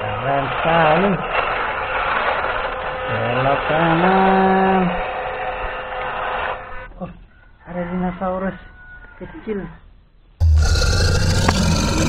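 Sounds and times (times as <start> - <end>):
electric motor and gears whirring: 10.4 - 12.0
man's drawn-out vocal sound: 10.4 - 12.0.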